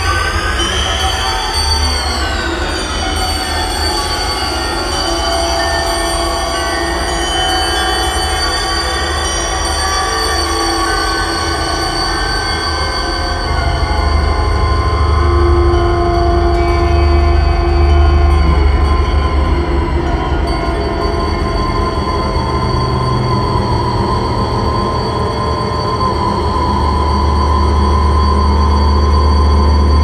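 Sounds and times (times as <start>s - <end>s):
synthesizer drones: 0.0s - 30.0s.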